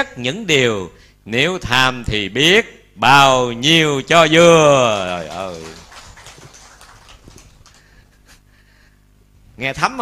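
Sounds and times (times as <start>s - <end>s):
audience clapping: 3.9s - 8.2s.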